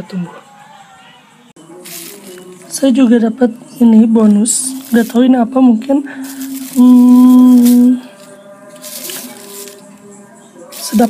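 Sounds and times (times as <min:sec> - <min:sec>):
hands rustling dry bulbs: 0:01.9 - 0:02.8, 0:04.5 - 0:05.4, 0:06.2 - 0:09.9, 0:10.7 - 0:11.0.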